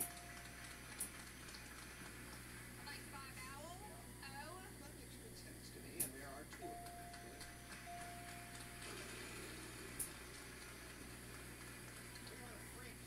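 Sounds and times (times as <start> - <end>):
muffled television speech: 2.8 - 7.6, 12.2 - 13.0
steady high tone: 6.6 - 8.9.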